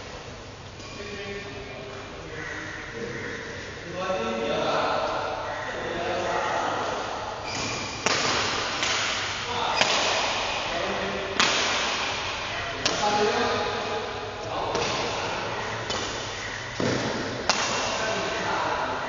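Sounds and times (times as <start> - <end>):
rackets striking shuttlecock: 7.4 - 10.7, 11.3 - 18.3.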